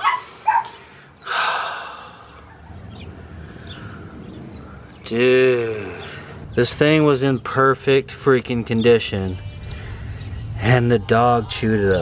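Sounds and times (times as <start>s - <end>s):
man huffing and sighing: 0.9s - 2.3s.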